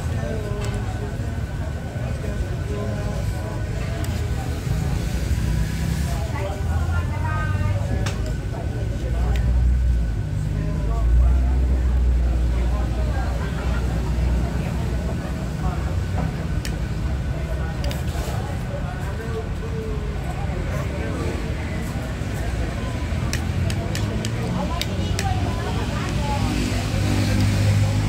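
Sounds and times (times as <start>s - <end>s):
indistinct background voices: 0.0s - 28.0s.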